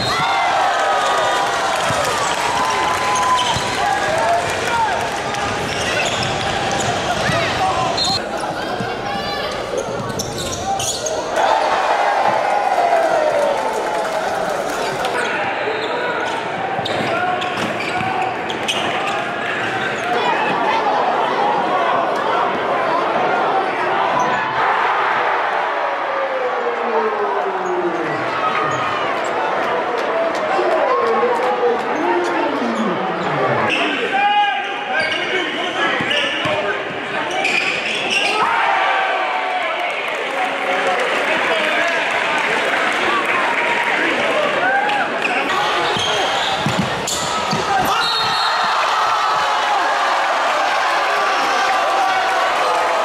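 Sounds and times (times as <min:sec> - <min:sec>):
crowd and player voices: 0:00.0 - 0:53.0
sneaker squeaks: 0:05.6 - 0:11.3, 0:15.7 - 0:20.2, 0:37.2 - 0:38.4, 0:45.8 - 0:48.7
ball bouncing on wooden court: 0:46.0 - 0:47.9.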